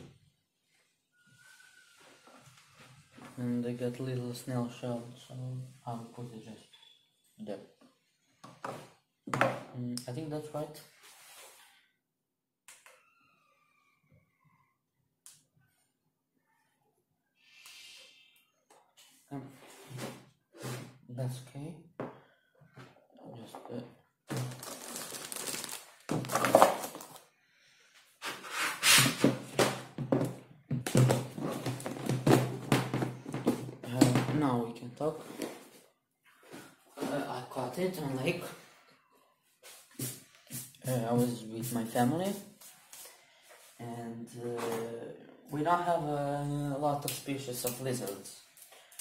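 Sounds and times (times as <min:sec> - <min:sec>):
plastic bag crinkling: 0:24.3 - 0:27.2.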